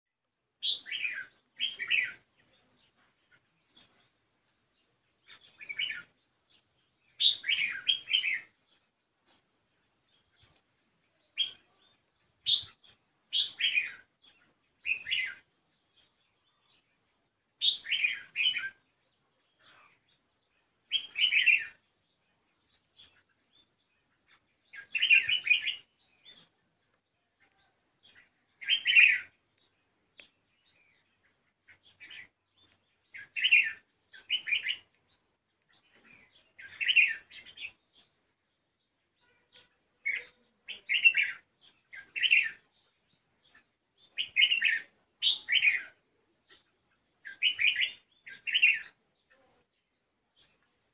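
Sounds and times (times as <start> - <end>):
bird singing warbling phrases: 0.3 - 50.9.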